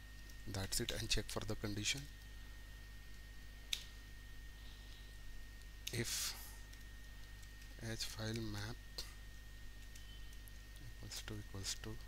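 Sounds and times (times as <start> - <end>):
faint electrical hum: 0.0 - 12.0
thin high whine: 7.8 - 12.0.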